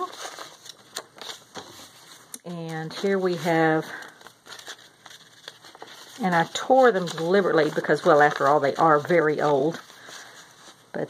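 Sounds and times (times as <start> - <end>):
paper rustling and crinkling: 0.0 - 11.0.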